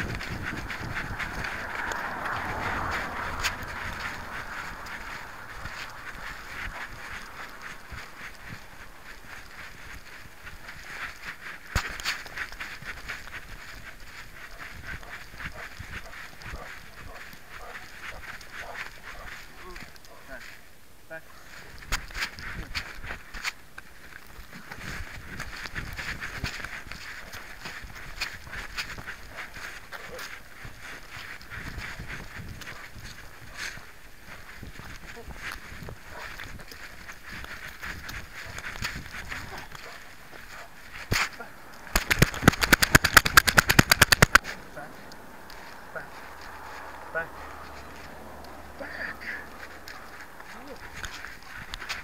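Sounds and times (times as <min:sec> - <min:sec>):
camera rubbing and knocking: 0:00.0 - 0:17.0, 0:41.9 - 0:44.4
rapid rattling clicks: 0:41.9 - 0:44.4.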